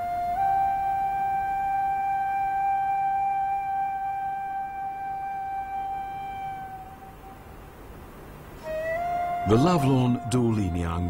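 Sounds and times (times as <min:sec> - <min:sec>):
flute holding long note: 0:00.0 - 0:07.8, 0:08.6 - 0:11.0.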